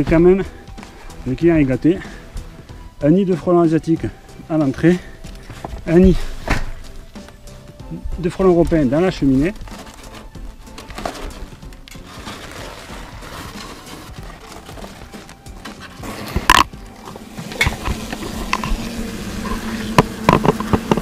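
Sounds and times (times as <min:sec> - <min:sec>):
powder puffing: 0:00.1 - 0:21.0
hornets buzzing: 0:12.9 - 0:21.0.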